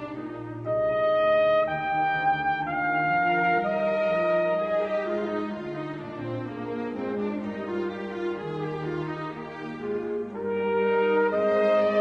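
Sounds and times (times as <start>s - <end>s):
orchestral brass melody: 0.0s - 12.0s.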